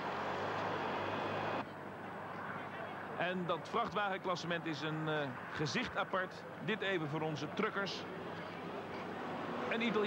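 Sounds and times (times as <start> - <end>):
quieter truck engine: 0.0 - 2.8.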